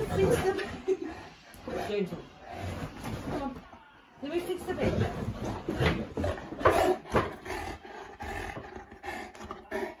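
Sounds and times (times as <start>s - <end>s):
dog growling: 0.0s - 3.3s, 4.8s - 10.0s.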